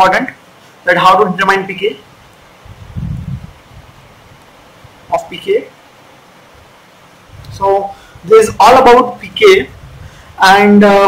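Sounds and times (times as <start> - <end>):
low rumble on microphone: 2.6 - 5.1, 7.3 - 8.6, 9.3 - 10.4.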